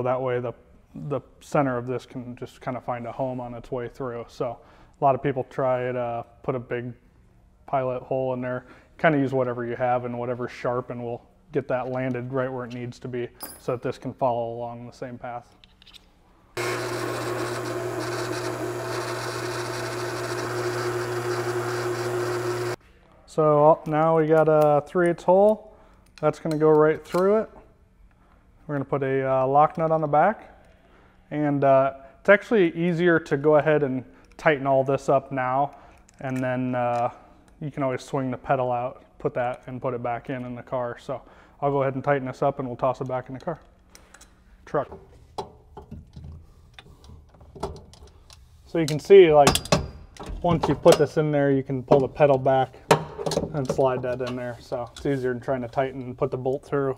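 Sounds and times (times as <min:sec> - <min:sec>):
drill press drilling metal: 0:16.6 - 0:22.8.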